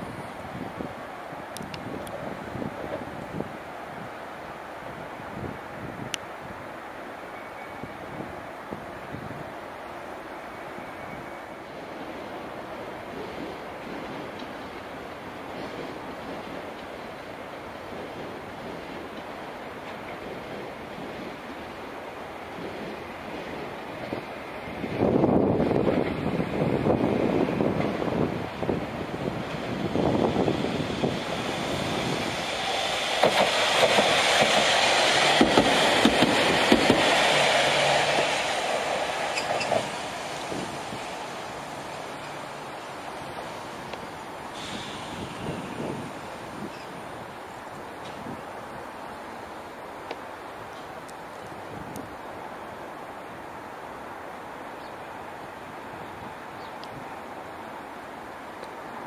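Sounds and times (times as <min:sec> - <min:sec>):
tram passing on track: 0:00.0 - 0:59.0
wheels clicking on rails: 0:25.6 - 0:48.4.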